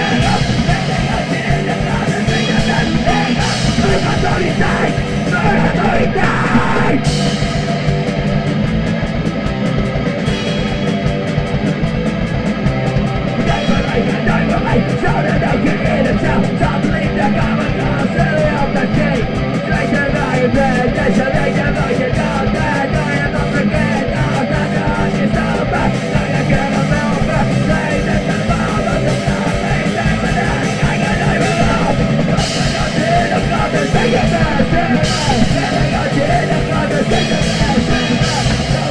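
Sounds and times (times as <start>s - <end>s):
distorted electric guitar: 0.0s - 38.9s
fast drum beat: 0.0s - 38.9s.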